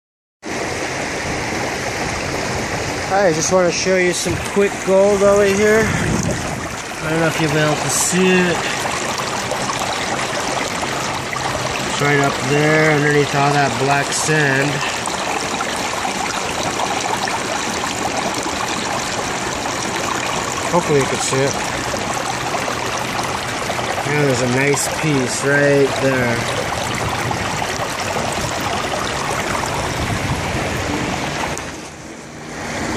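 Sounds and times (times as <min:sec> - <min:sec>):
stream water rushing over rocks: 0:00.4 - 0:32.9.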